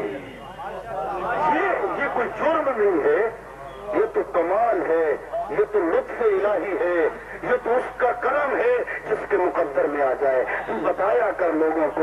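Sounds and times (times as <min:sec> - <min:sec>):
man preaching into microphone: 0:01.3 - 0:12.0.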